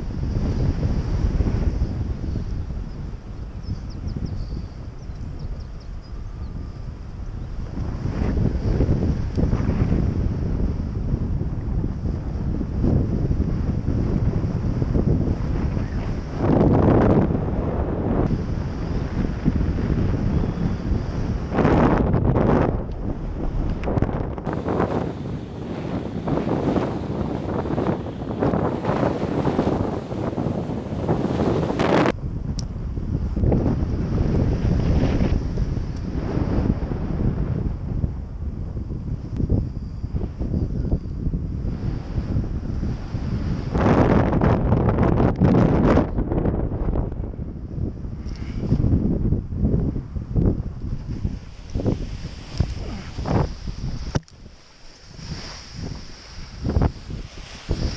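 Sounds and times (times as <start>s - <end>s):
wind rushing over microphone: 0.0s - 57.9s.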